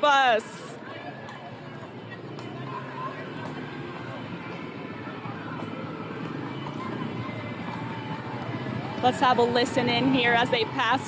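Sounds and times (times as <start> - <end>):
crowd cheering and talking: 0.0 - 11.0
faint music: 0.0 - 11.0.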